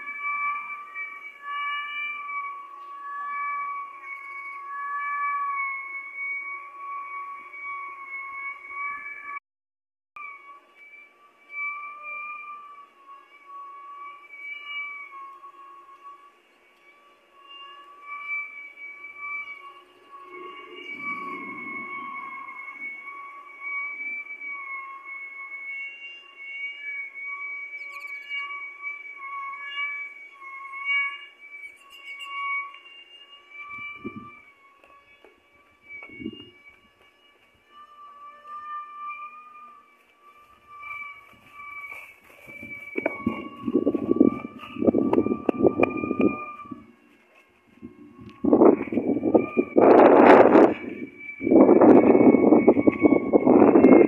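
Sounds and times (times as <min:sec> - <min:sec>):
wind whistling and howling: 0:10.4 - 0:31.8, 0:33.6 - 0:38.2, 0:38.9 - 0:54.0
low gusty rumble: 0:43.1 - 0:47.0, 0:47.8 - 0:54.0.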